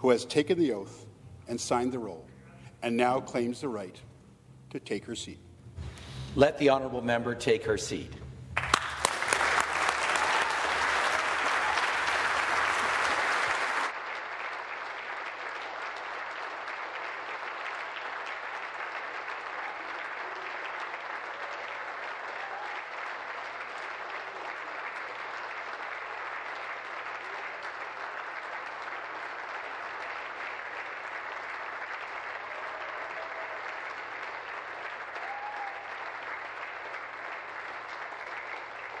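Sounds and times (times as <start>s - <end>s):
crowd applauding: 8.6s - 39.0s.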